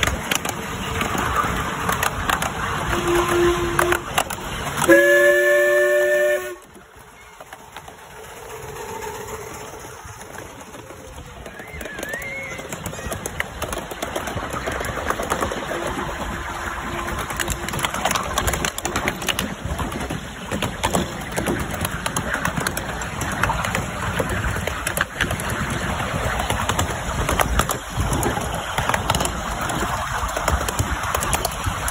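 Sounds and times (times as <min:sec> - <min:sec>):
miniature train rumbling on track: 0:00.0 - 0:31.9
steam locomotive whistle: 0:02.9 - 0:06.8.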